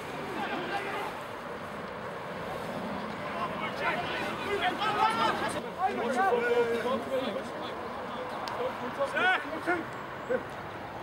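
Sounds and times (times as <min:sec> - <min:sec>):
distant voices and calls: 0:00.0 - 0:11.0
steady outdoor hiss: 0:00.0 - 0:11.0.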